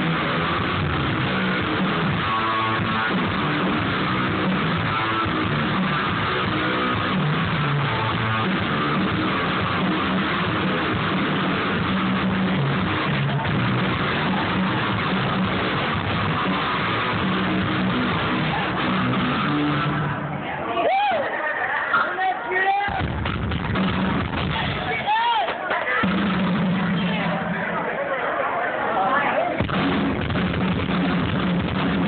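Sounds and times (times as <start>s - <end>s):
electric guitar: 0.0s - 20.4s, 29.6s - 32.0s
bass guitar: 0.0s - 20.7s, 22.9s - 27.9s, 29.6s - 32.0s.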